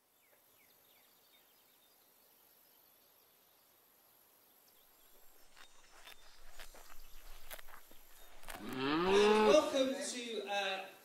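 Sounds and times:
cow mooing: 8.6 - 9.6.

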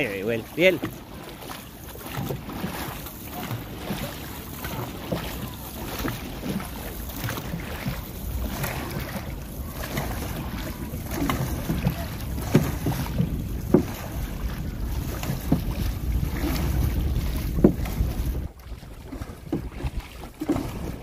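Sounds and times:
paddle strokes: 0.0 - 21.0
wind buffeting microphone: 4.9 - 21.0.

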